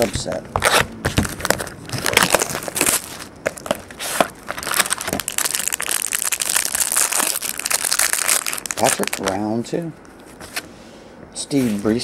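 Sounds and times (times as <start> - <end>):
plastic wrapping crinkling: 0.6 - 9.6.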